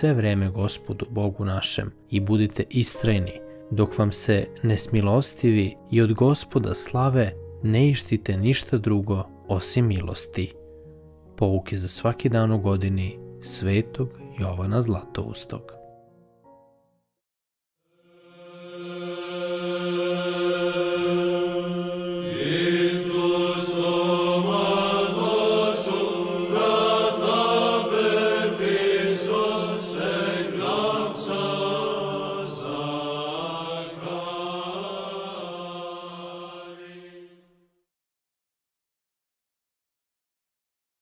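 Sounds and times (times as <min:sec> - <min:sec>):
voices chanting: 0:18.0 - 0:37.4.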